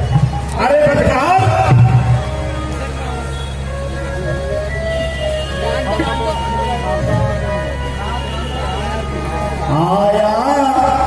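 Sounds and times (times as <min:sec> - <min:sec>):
held musical tones: 0:00.0 - 0:11.0
murmur of voices: 0:00.0 - 0:11.0
man speaking or chanting: 0:09.6 - 0:11.0.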